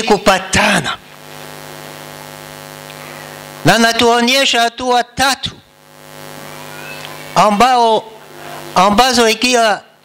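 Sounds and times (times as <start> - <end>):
constant hiss: 0.0 - 10.0
electrical mains hum: 0.0 - 10.0.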